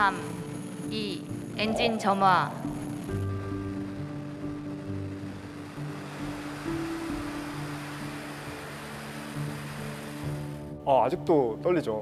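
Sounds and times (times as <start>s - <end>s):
rocket engines roaring: 0.0s - 10.8s
music with long held notes: 0.0s - 12.0s.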